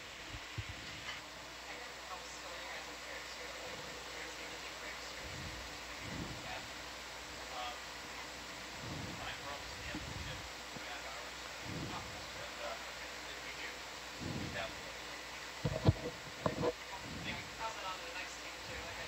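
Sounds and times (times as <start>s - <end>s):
faint indistinct voices: 0.6s - 19.0s
sharp thumps: 15.6s - 17.4s.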